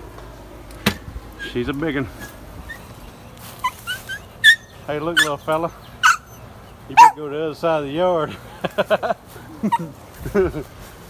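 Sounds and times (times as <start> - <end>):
dog whining yips: 2.6 - 2.9, 3.6 - 6.4, 7.0 - 7.2.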